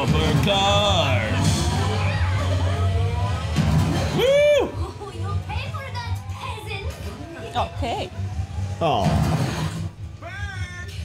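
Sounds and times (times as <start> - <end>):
background music: 0.0 - 10.8
indistinct chatter and laughter: 1.3 - 8.8.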